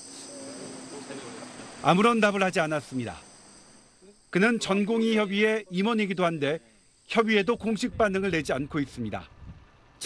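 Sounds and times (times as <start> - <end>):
high-pitched whine: 0.0 - 9.2
man speaking: 0.4 - 3.2, 4.0 - 9.3.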